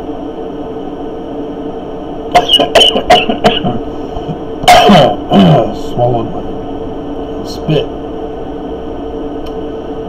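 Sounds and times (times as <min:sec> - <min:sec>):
background hum: 0:00.0 - 0:10.0
man chuckling: 0:02.3 - 0:05.7.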